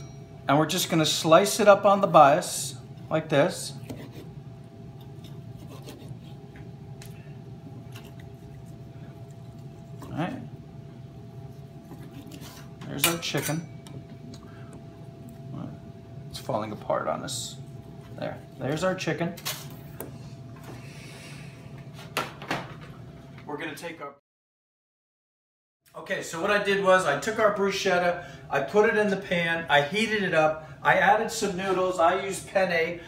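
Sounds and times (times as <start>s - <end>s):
steady low hum: 0.0s - 24.2s, 25.9s - 33.0s
knife cutting on wooden board: 5.2s - 6.4s.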